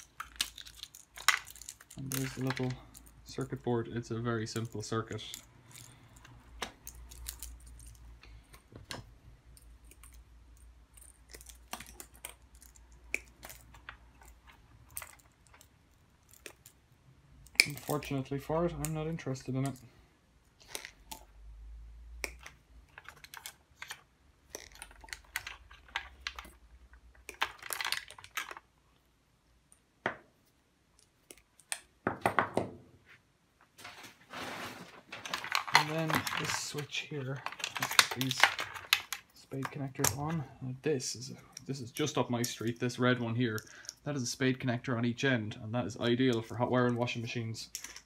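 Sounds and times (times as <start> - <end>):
plastic parts clicking and tapping: 0.0 - 3.6, 4.4 - 16.8, 22.2 - 28.7, 35.1 - 40.4, 47.7 - 48.0
sharp knocks and plastic clatters: 31.7 - 34.2, 34.8 - 40.4.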